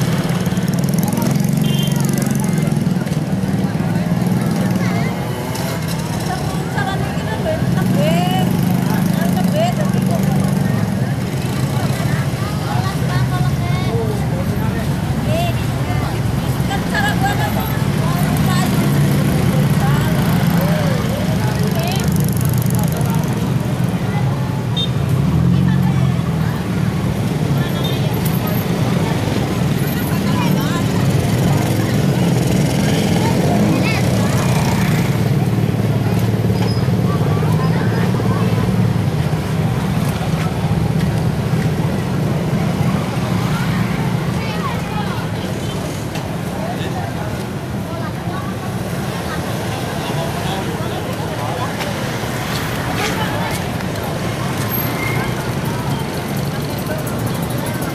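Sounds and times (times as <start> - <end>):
crowd chatter: 0.0 - 57.9
scooters and motorcycles passing: 0.0 - 57.9.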